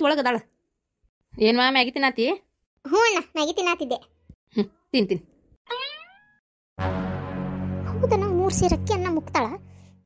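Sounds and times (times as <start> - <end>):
short high-pitched vocal calls: 5.7 - 6.4.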